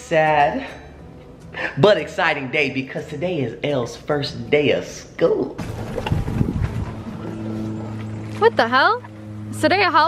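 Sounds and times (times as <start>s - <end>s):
golf cart driving: 5.6s - 10.0s.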